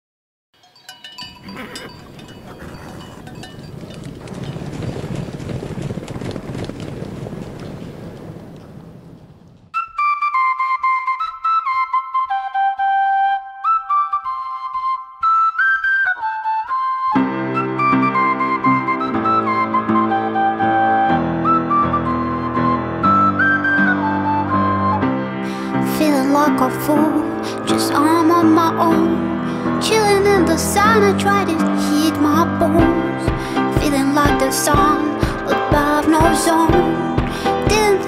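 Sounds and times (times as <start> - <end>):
animal bleats: 1.4 - 3.4
solo flute melody: 9.8 - 27.7
song backing music: 9.8 - 38.0.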